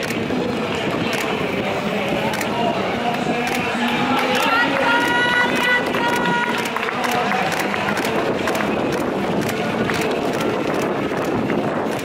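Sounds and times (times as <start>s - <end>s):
voices: 0.0s - 11.7s
runners' footsteps on stone: 0.0s - 12.0s.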